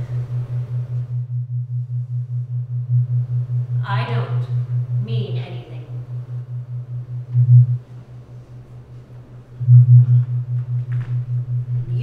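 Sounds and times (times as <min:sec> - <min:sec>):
low pulsing hum: 0:00.0 - 0:12.0.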